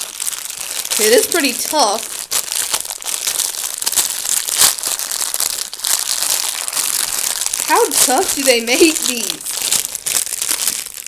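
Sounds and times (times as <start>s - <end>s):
plastic wrapper crinkling: 0.0s - 11.0s.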